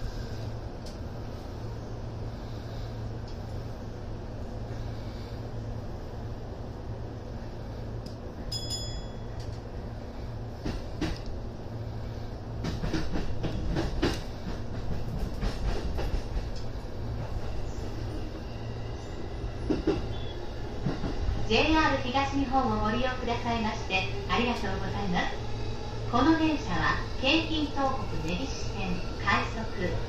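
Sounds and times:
train rumble: 0.0 - 30.0.

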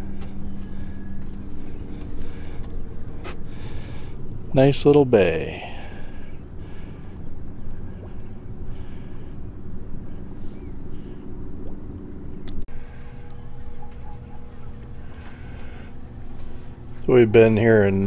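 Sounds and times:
boat engine rumbling: 0.0 - 18.0
faint higher hum: 0.0 - 18.0.

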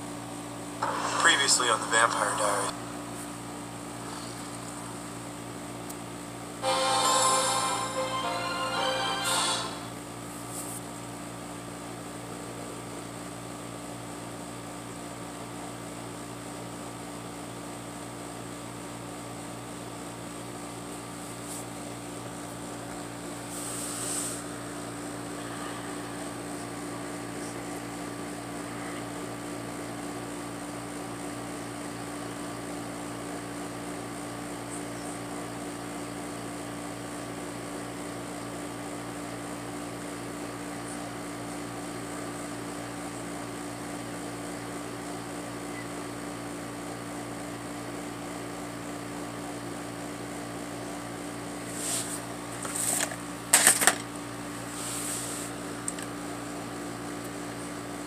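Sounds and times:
mechanical hum with hiss: 0.0 - 58.0.

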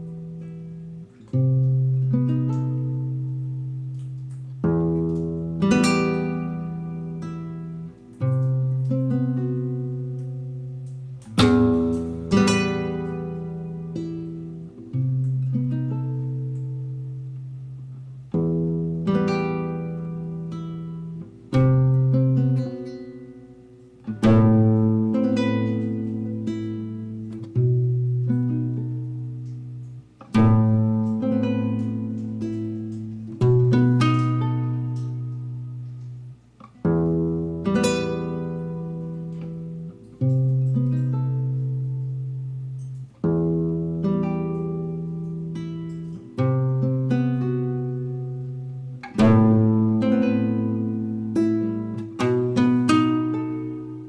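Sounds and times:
classical guitar fingerstyle: 0.0 - 54.0.

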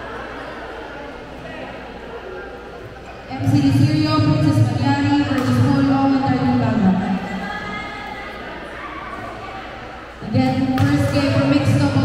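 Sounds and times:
hall and crowd noise: 0.0 - 12.0.

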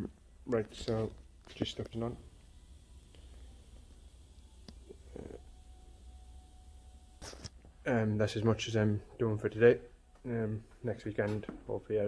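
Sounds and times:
faint thin steady tone: 0.0 - 12.0.

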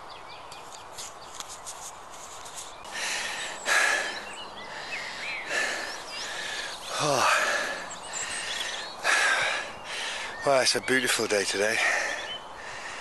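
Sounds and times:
small birds chirping: 0.0 - 13.0
distant traffic drone: 1.2 - 13.0.

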